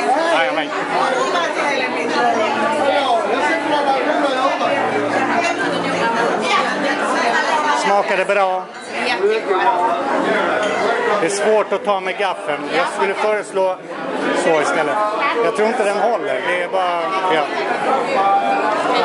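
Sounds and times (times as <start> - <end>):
crowd talking: 0.0 - 19.0.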